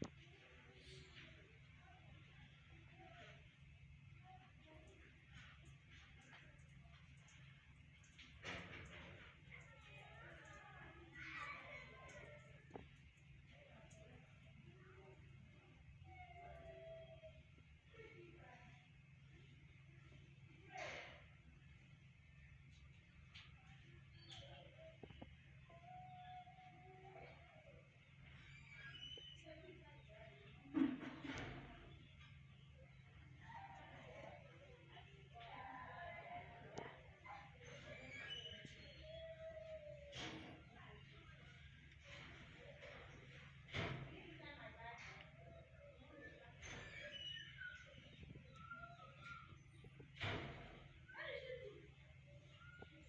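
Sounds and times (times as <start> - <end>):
faint low hum: 0.0 - 53.0.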